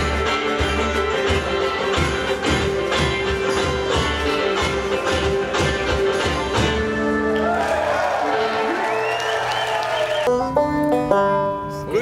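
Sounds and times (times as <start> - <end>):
banjo notes picked: 0.0 - 7.4, 10.3 - 12.0
string band music: 0.0 - 12.0.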